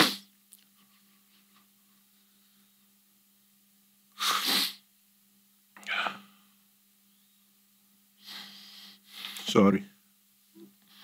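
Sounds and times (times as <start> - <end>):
man sniffing while crying: 0.0 - 0.3, 4.2 - 4.8, 8.2 - 9.4.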